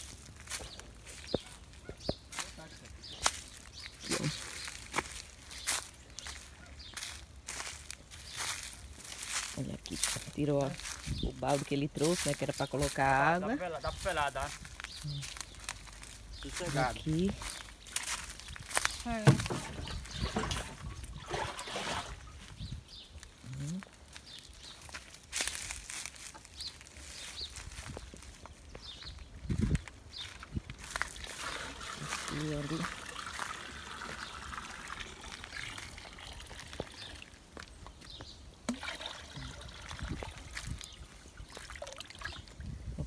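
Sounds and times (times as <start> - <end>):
water pouring into plastic bucket: 19.3 - 22.3, 31.1 - 37.4, 38.6 - 40.9.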